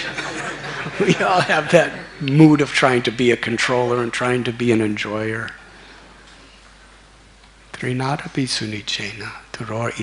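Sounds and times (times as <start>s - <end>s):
room and microphone hiss: 0.0s - 10.0s
man speaking: 1.0s - 5.7s, 7.7s - 10.0s.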